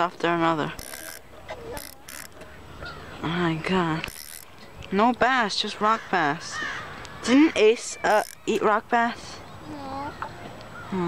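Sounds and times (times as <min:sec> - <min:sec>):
fishing reel gears rasping: 0:00.8 - 0:02.4, 0:04.0 - 0:04.5, 0:07.8 - 0:08.7.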